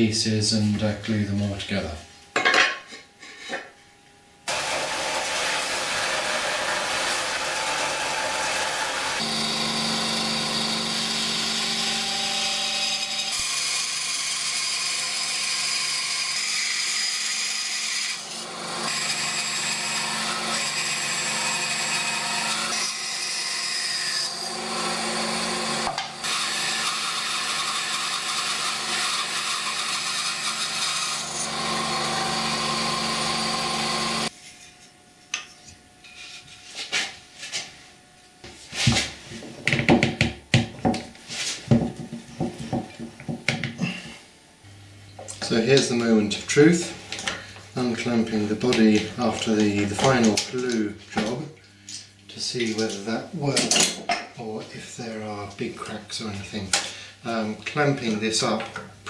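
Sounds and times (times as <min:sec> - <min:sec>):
belt sander sanding wood: 0:04.5 - 0:14.4, 0:24.1 - 0:34.4
bandsaw cutting wood: 0:04.5 - 0:34.3.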